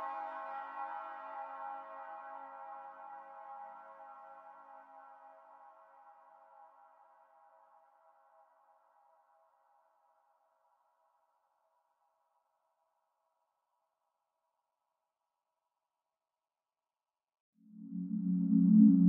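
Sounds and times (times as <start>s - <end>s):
held ambient music tones: 17.7s - 19.0s.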